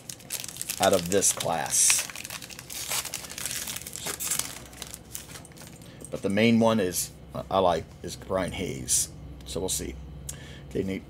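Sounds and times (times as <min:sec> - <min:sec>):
plastic sleeve crinkling: 0:00.0 - 0:05.9.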